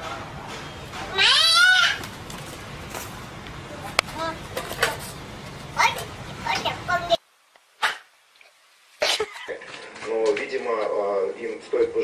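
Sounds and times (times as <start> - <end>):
cat meowing: 1.1 - 2.0.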